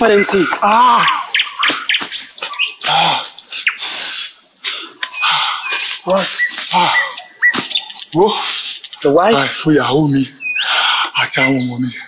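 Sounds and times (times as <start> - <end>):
birds chirping: 0.0 - 12.0
insects droning: 0.0 - 12.0.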